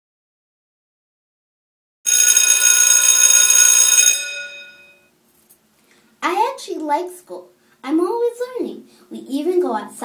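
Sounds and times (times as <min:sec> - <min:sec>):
school bell ringing: 0:02.1 - 0:05.1.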